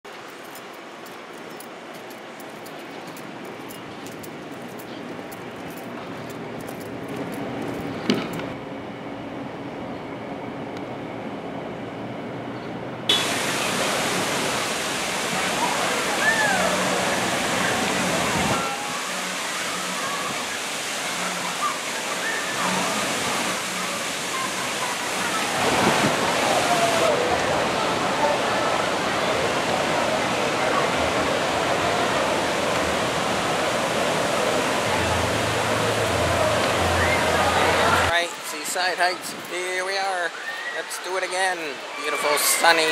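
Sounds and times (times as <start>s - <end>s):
rushing splashing water: 13.1s - 42.9s
children's voices and shouts: 18.5s - 22.9s.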